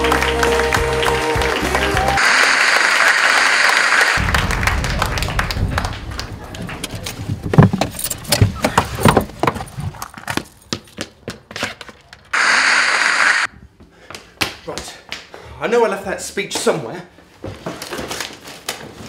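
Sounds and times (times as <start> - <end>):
music: 0.0 - 2.2
keys jingling: 7.8 - 8.4.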